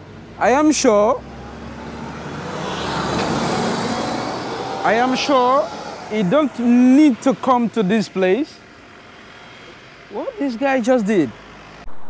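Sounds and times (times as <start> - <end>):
bus engine pulling away: 0.0 - 12.0.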